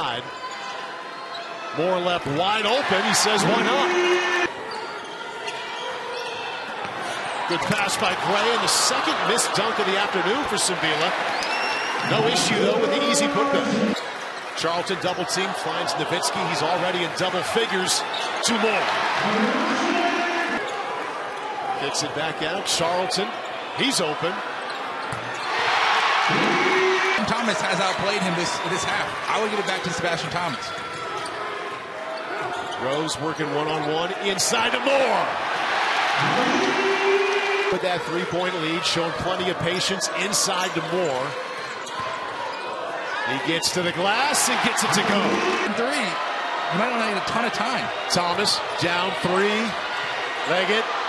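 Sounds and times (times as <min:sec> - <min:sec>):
crowd and court hum: 0:00.0 - 0:51.0
crowd murmur: 0:12.0 - 0:14.0, 0:36.2 - 0:37.8, 0:44.8 - 0:46.1.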